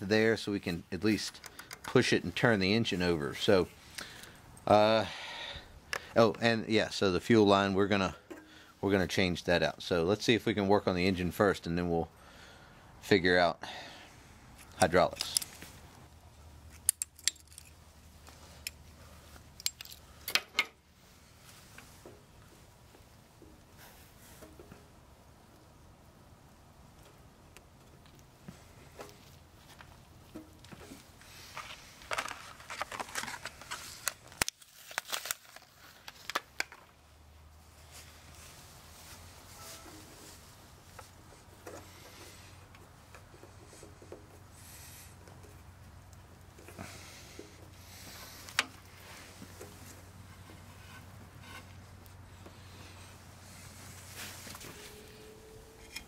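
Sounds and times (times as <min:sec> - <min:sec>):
hands clicking and rubbing fuel line: 0:01.0 - 0:02.1, 0:05.8 - 0:06.5, 0:16.6 - 0:20.8, 0:40.2 - 0:56.0.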